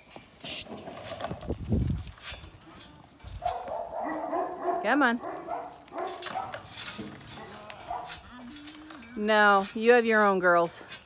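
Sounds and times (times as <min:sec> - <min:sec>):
knocks and shuffling in metal pen: 0:00.0 - 0:11.0
sheep bleating: 0:07.4 - 0:09.2.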